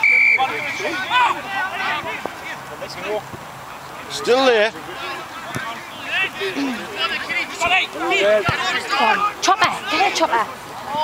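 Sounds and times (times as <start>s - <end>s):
referee's whistle blast: 0.0s - 0.9s
people shouting: 0.0s - 2.2s, 4.8s - 11.0s.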